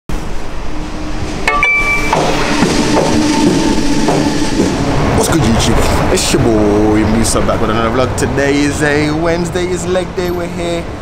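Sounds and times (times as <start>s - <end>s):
train rumbling: 0.1s - 11.0s.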